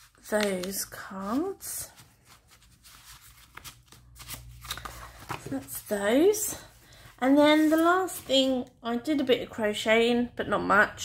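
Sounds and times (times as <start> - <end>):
paper cards rustling: 0.0 - 6.0, 7.4 - 8.5.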